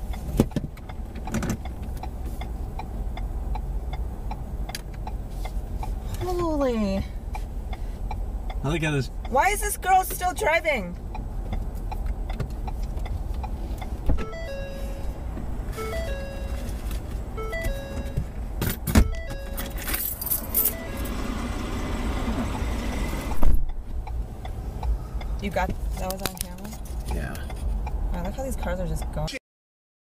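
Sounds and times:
car engine idling: 0.0 - 29.0
short beeping tones: 14.2 - 18.4, 19.0 - 21.2.

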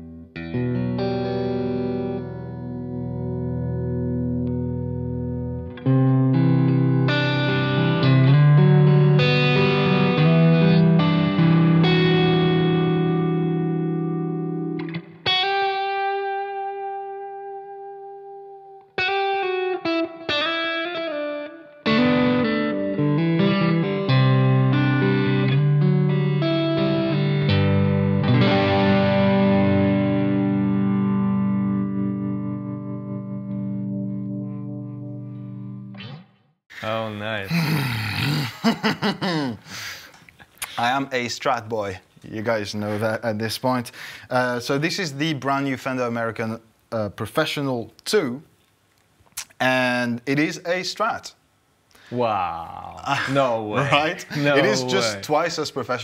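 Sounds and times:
electric guitar through amplifier: 0.0 - 36.3.

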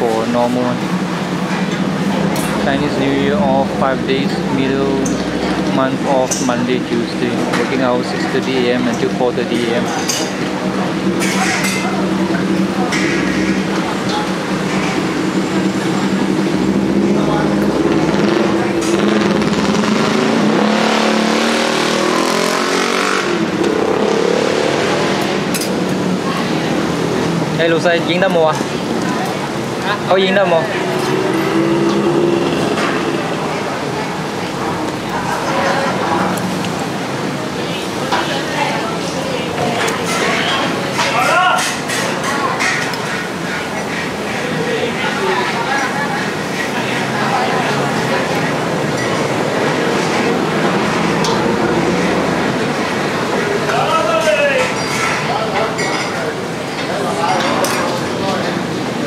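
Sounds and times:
busy restaurant roar: 0.0 - 59.0
vehicle engine accelerating: 10.3 - 27.7, 28.6 - 38.0, 45.4 - 53.7.

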